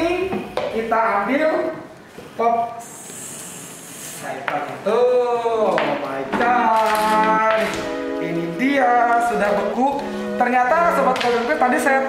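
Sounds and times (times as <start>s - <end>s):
soft high hiss: 0.0s - 12.0s
person's voice: 4.1s - 12.0s.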